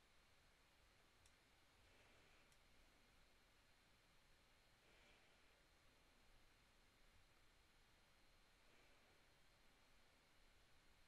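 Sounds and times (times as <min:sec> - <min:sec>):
faint room hiss: 0:00.0 - 0:11.0
faint click: 0:01.2 - 0:01.4.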